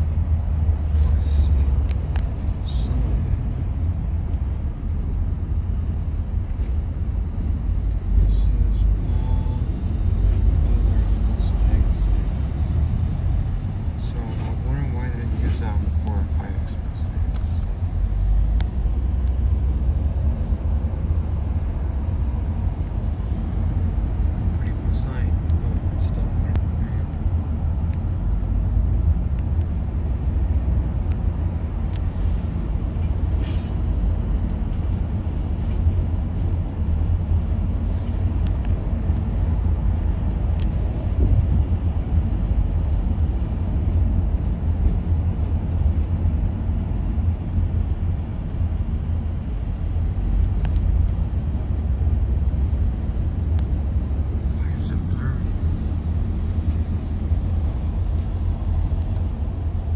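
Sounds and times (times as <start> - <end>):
road and engine rumble in car: 0.0 - 59.9.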